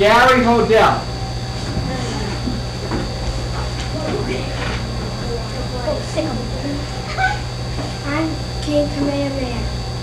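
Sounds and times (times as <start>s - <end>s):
steady low hum: 0.0s - 10.0s
thin high whine: 0.0s - 10.0s
child's voice: 5.5s - 7.4s, 8.0s - 9.7s.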